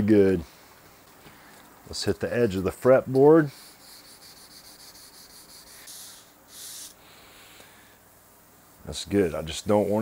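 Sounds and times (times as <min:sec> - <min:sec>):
sanding block scratching wood: 0:03.5 - 0:06.9.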